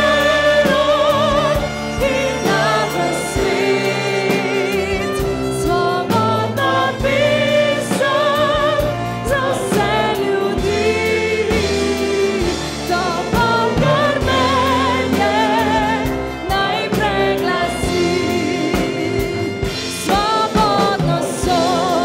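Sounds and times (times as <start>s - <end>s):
men's choir singing: 0.0s - 22.0s
wind band playing: 0.0s - 22.0s
woman singing with vibrato: 0.0s - 22.0s.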